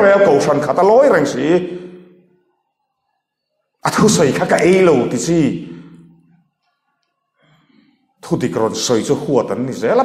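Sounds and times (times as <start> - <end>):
man speaking: 0.0 - 2.1, 3.8 - 6.1, 8.2 - 10.0.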